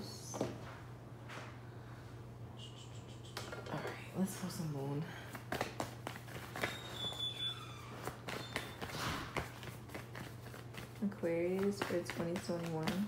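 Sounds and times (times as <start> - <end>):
steady low hum: 0.0 - 13.0
cards being shuffled: 5.3 - 13.0.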